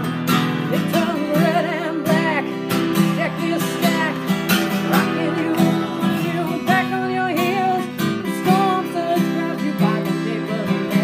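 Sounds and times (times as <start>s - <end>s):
acoustic guitar strumming: 0.0s - 11.0s
woman singing: 0.6s - 11.0s.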